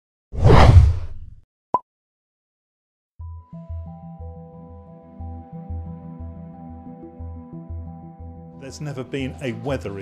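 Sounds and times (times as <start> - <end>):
loud whoosh: 0.4 - 1.3.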